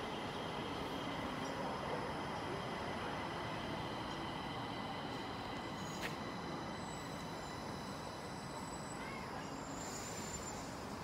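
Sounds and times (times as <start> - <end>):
train rumble: 0.0 - 11.0.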